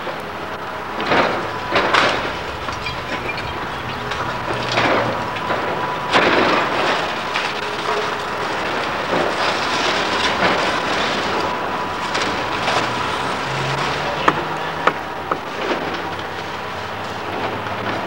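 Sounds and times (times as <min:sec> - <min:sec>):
diesel engine running: 0:00.0 - 0:18.0
debris crashing: 0:00.4 - 0:16.2.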